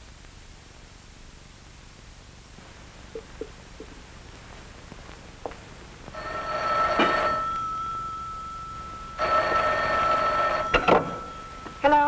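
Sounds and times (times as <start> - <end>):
telephone bell ringing: 6.1 - 12.0.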